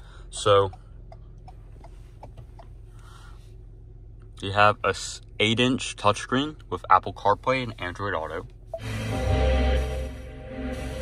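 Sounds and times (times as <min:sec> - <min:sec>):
car cabin hum: 0:00.0 - 0:10.9.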